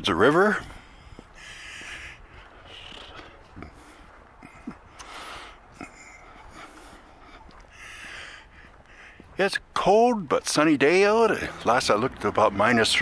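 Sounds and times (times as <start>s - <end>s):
footsteps on snow: 0.1s - 13.0s
person breathing: 0.6s - 9.3s.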